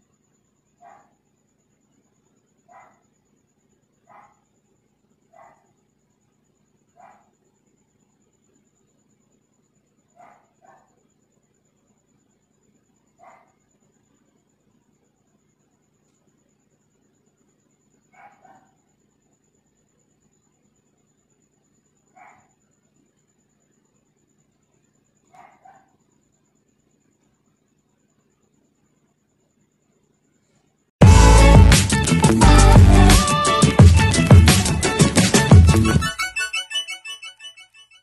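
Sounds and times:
dog barking faintly: 0:00.8 - 0:01.2, 0:02.7 - 0:03.1, 0:04.0 - 0:04.5, 0:05.3 - 0:05.8, 0:06.9 - 0:07.4, 0:10.1 - 0:11.1, 0:13.1 - 0:13.7, 0:18.1 - 0:18.9, 0:22.1 - 0:22.6, 0:25.3 - 0:26.1.

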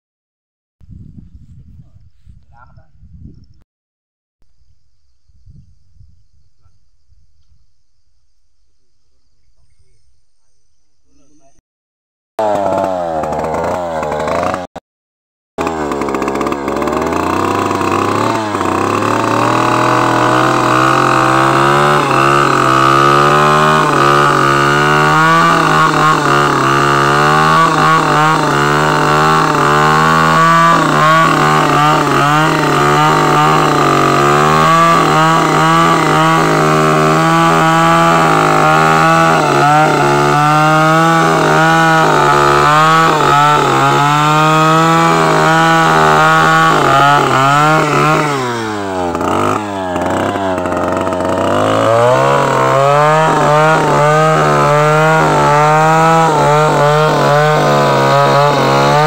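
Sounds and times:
chainsaw cutting wood: 0:12.4 - 0:14.8, 0:15.6 - 0:59.0.

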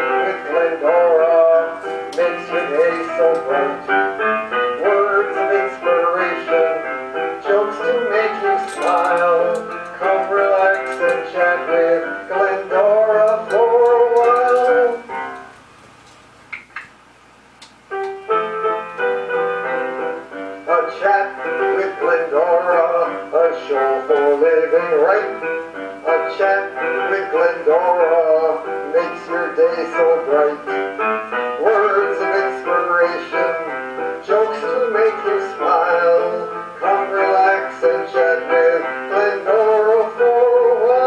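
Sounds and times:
man singing: 0:00.0 - 0:15.5, 0:20.0 - 0:41.0
piano accompaniment: 0:00.0 - 0:16.9, 0:17.8 - 0:41.0
faint clicks: 0:08.6 - 0:11.3, 0:13.2 - 0:16.9, 0:17.6 - 0:18.2.

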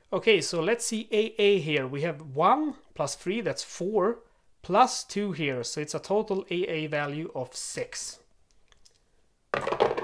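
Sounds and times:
dice rattling: 0:09.6 - 0:10.0.

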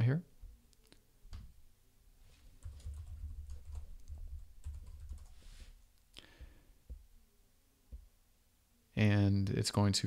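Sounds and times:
typing on computer keyboard: 0:02.6 - 0:05.4.

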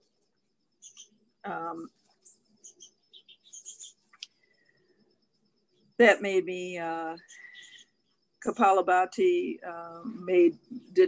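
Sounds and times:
faint bird chirping: 0:00.0 - 0:11.0.

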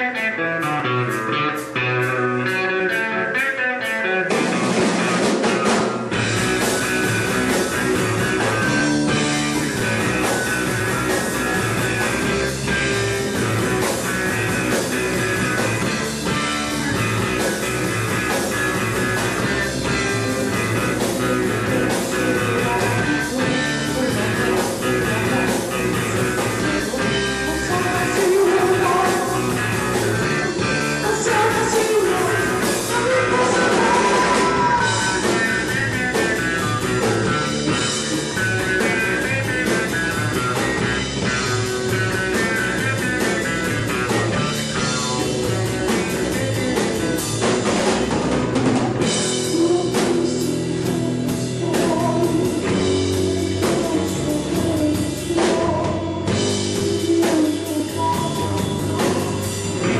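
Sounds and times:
bass guitar: 0:00.0 - 0:59.9
drum kit: 0:00.0 - 0:59.9
electric guitar: 0:00.0 - 0:59.9
rock band playing: 0:00.0 - 0:59.9.

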